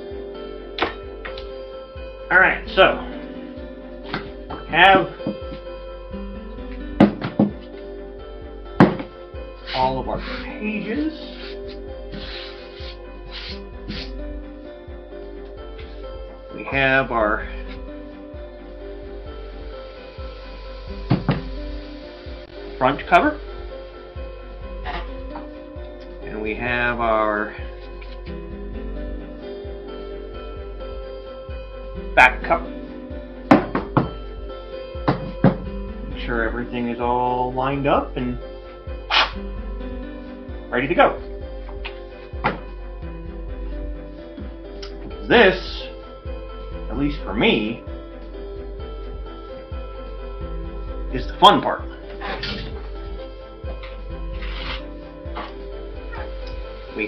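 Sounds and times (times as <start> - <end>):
background music sustained notes: 0.0 - 57.0.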